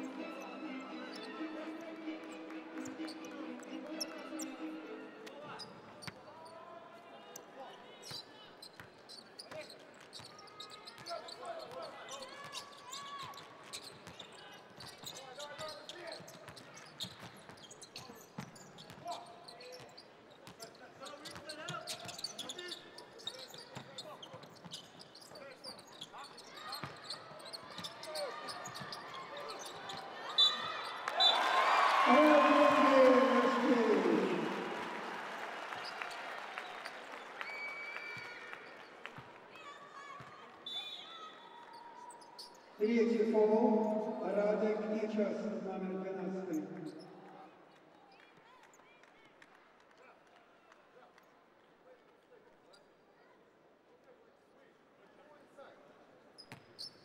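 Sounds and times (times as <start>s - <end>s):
music: 0.0s - 5.3s
players and spectators talking: 0.0s - 56.8s.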